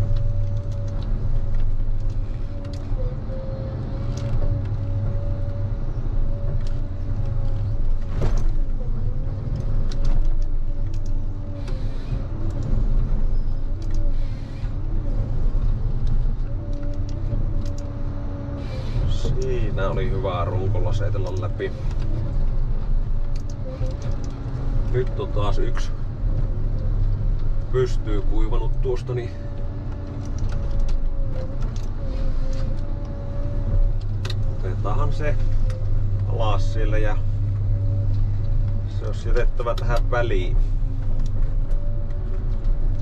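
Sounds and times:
diesel engine running: 0.0 - 43.0
hydraulic whine: 10.6 - 43.0.

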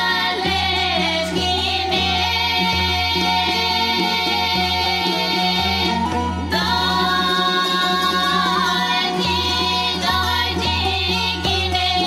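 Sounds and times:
group singing folk song: 0.0 - 12.0
strummed lutes: 0.0 - 12.0.

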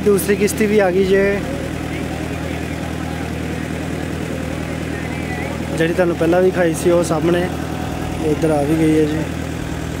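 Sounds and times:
ferry engine droning: 0.0 - 10.0.

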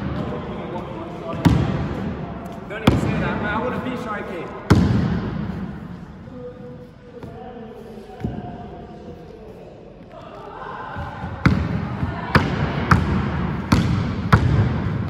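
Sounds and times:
basketball bouncing on wooden floor: 12.4 - 15.0.

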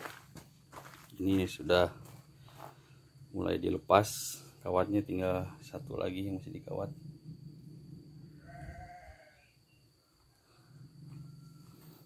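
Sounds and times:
low hum: 1.4 - 8.9
faint wavering animal call: 8.2 - 12.0.

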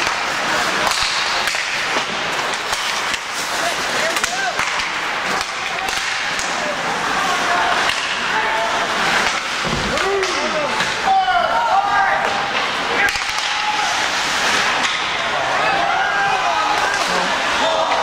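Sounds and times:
skate blades scraping ice: 0.0 - 11.1, 12.1 - 18.0
sticks and puck clacking: 0.0 - 18.0
voices shouting: 9.9 - 18.0.

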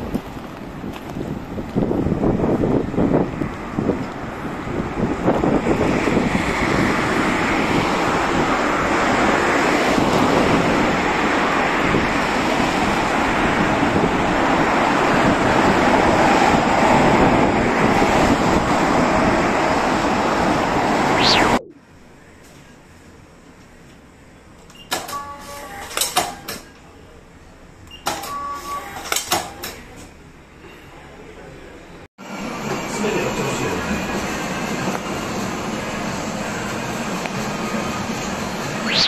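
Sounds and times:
wind blowing on microphone: 0.0 - 8.6
road traffic noise: 0.0 - 39.0
short rising sweep: 21.0 - 21.7, 38.8 - 39.0.

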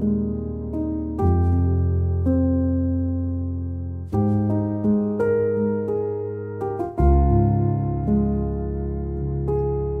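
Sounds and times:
slow calm piano solo: 0.0 - 10.0.

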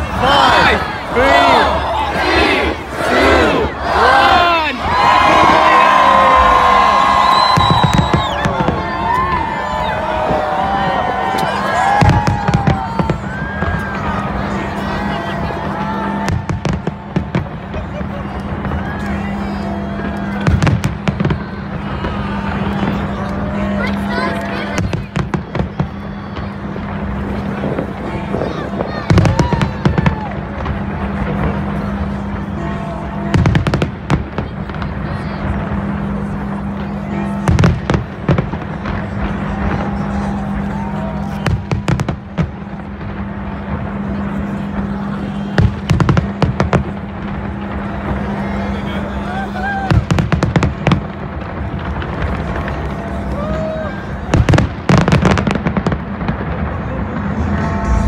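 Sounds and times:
crowd voices: 0.0 - 58.0
fireworks exploding: 0.0 - 58.0.

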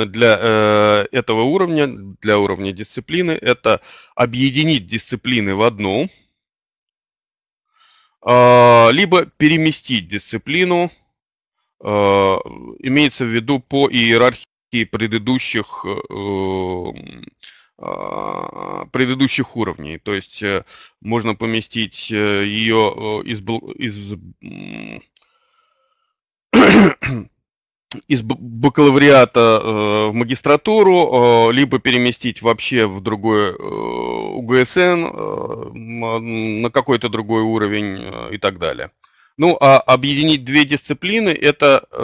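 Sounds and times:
man speaking: 0.0 - 6.2, 8.2 - 11.0, 11.8 - 25.0, 27.9 - 42.0
faint intake of breath: 7.7 - 8.2
man clearing throat: 26.5 - 27.4.

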